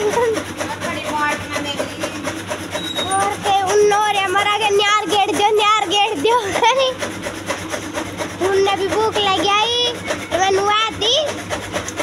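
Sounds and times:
chaff cutter chopping fodder: 0.0s - 12.0s.

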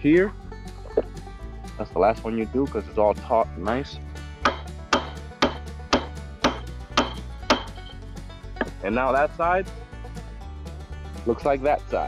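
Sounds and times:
hammer striking fence staple: 4.4s - 7.9s.

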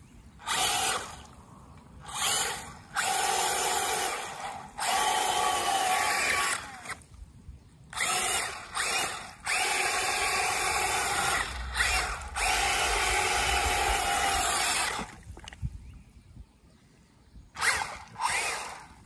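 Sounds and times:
wheels churning water: 0.0s - 1.4s, 2.0s - 7.1s, 8.0s - 15.7s, 17.6s - 19.0s
electric toy motor whining: 0.4s - 1.1s, 2.1s - 7.0s, 8.0s - 15.1s, 17.6s - 18.9s.

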